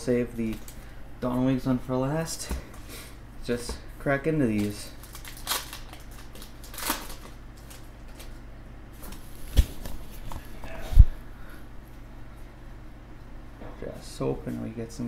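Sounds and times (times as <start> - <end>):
foil wrapper crinkling: 4.5 - 8.4.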